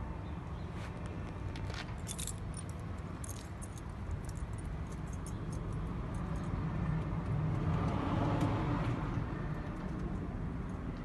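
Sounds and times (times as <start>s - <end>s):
light metallic jingles: 1.7s - 6.6s.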